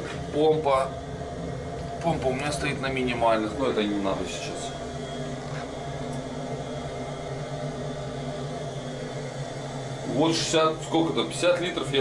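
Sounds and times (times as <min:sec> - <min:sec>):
heating boiler burner humming: 0:00.0 - 0:12.0.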